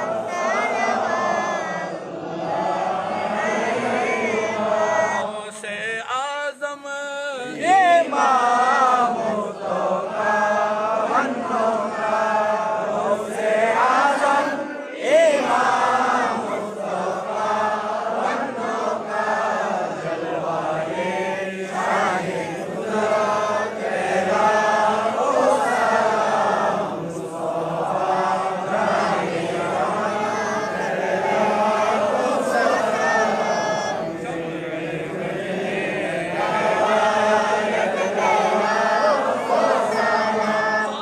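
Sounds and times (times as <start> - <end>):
men chanting in unison: 0.0 - 41.0.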